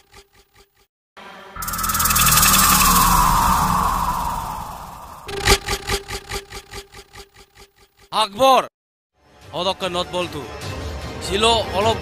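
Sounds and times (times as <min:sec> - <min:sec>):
loud rushing noise falling in pitch: 0:01.6 - 0:06.2
steady low tone: 0:01.6 - 0:06.2.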